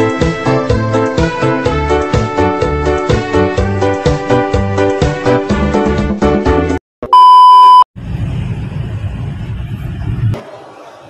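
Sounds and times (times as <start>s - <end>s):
test-tone beep: 7.1s - 7.8s.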